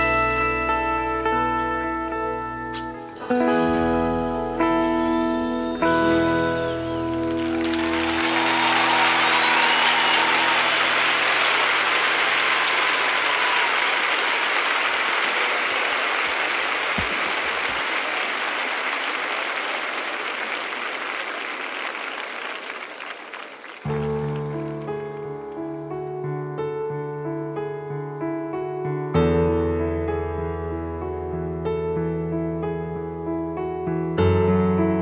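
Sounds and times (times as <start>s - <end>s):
piano playing: 0.0s - 17.0s, 23.8s - 35.0s
audience applauding: 7.0s - 26.2s.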